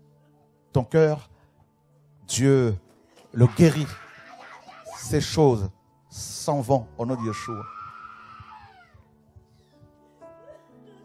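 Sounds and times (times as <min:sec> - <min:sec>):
soft keyboard music: 0:00.0 - 0:11.0
high wailing cry: 0:03.4 - 0:05.3, 0:07.2 - 0:09.1.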